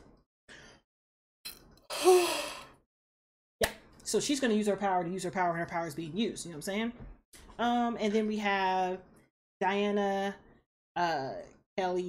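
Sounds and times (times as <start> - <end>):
woman's breathy exclamation: 1.9 - 2.7.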